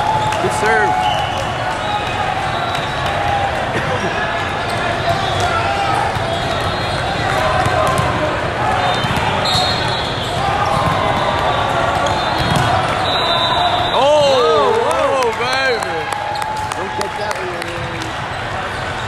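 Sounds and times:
crowd voices and shouts: 0.0s - 19.0s
volleyballs thumping: 5.4s - 13.0s, 14.1s - 15.7s.

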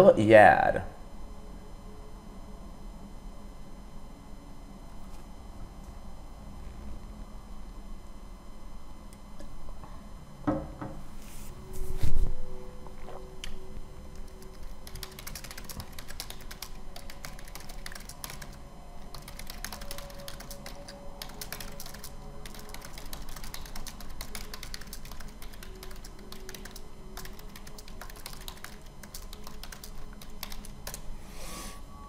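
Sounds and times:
typing on computer keyboard: 14.2s - 31.0s.

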